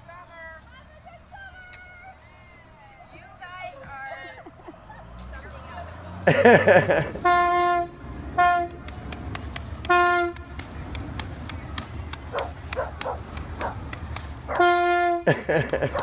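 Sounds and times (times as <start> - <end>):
bus horn honking: 5.8 - 9.1, 9.7 - 10.9, 14.5 - 15.7.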